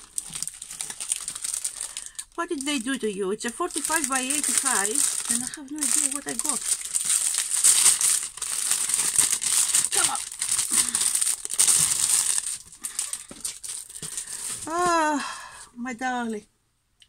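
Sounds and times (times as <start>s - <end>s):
plastic packaging crinkling: 0.0s - 15.2s.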